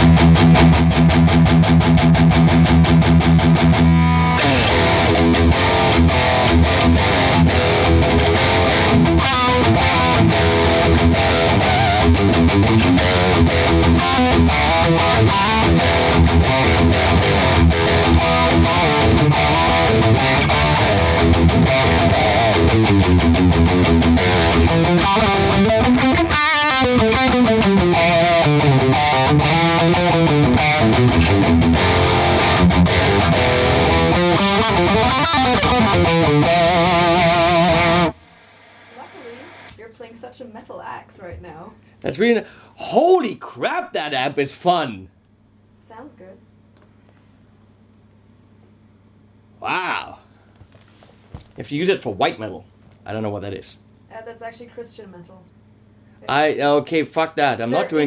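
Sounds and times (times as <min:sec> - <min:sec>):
distorted electric guitar riffing: 0:00.0 - 0:39.7, 0:57.5 - 0:58.0.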